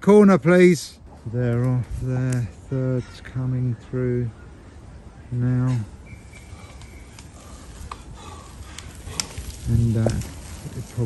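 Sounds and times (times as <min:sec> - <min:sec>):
bike tyres rolling in mud: 0:06.0 - 0:11.0.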